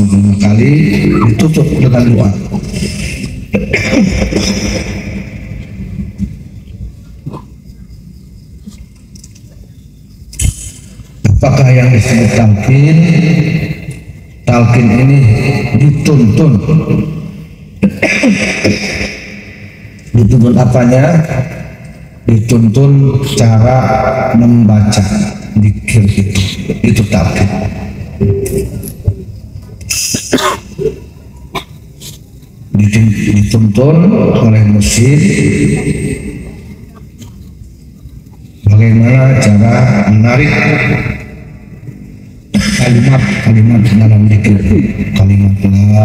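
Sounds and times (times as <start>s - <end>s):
low background noise: 0.0s - 46.0s
throat clearing: 2.8s - 4.8s, 7.2s - 7.5s, 17.8s - 18.6s, 30.0s - 32.2s
person coughing: 3.6s - 4.6s, 17.9s - 18.6s, 30.1s - 32.2s.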